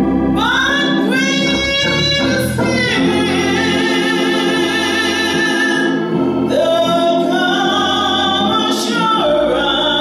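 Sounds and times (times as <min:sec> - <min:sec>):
sustained organ-like chords: 0:00.0 - 0:10.0
woman singing gospel song: 0:00.4 - 0:10.0.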